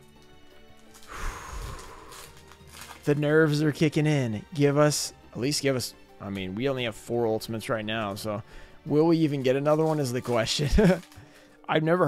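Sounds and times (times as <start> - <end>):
foil wrapper tearing and crinkling: 0.8 - 3.6, 9.4 - 11.5.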